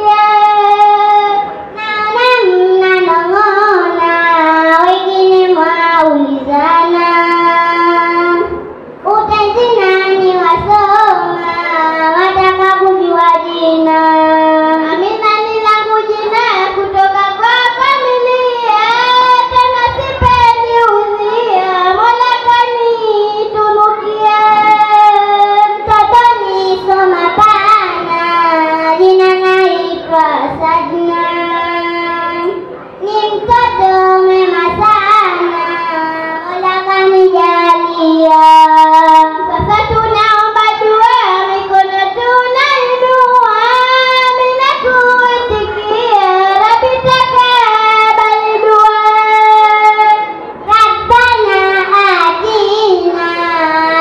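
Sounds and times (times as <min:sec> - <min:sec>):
girls singing unaccompanied: 0:00.0 - 0:54.0.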